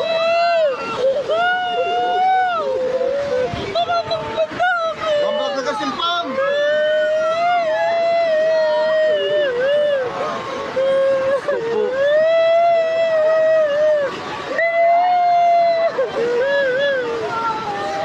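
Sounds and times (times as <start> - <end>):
floodwater rushing: 0.0 - 18.0.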